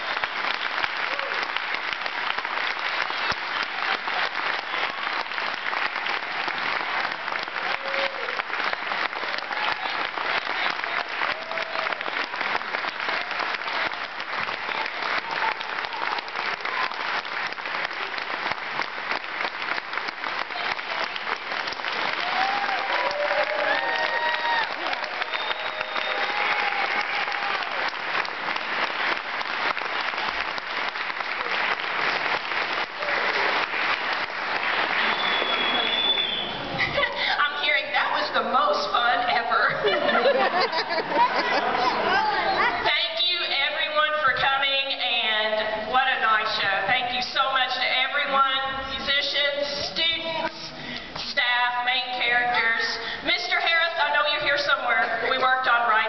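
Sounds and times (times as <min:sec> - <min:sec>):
audience applauding: 0:00.0 - 0:37.3, 0:39.6 - 0:42.9.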